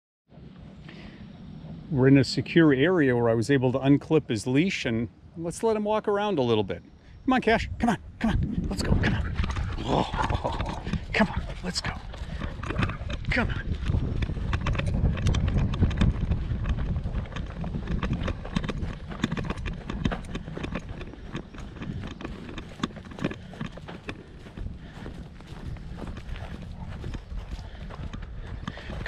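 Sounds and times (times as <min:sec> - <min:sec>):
low rumble: 0:08.0 - 0:29.0
footsteps on grass and dry ground: 0:08.6 - 0:29.0.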